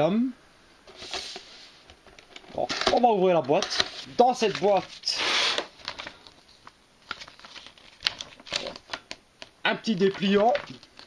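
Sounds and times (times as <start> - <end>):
paper crackle: 2.3 - 11.0
paper leaflet rustling: 2.6 - 9.2, 9.9 - 11.0.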